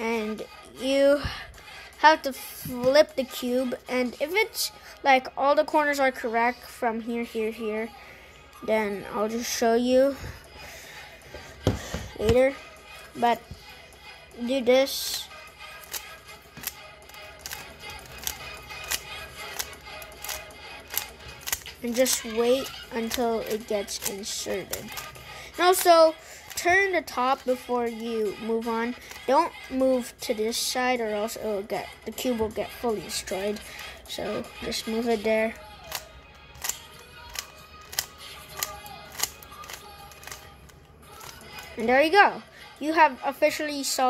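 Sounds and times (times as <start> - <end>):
faint background music: 0.0 - 44.0
puzzle cube clicking: 15.8 - 25.1, 35.8 - 41.4.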